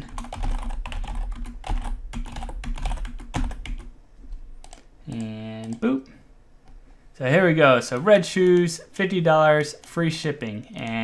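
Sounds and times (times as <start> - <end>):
computer keyboard typing: 0.0 - 3.9, 4.6 - 5.8.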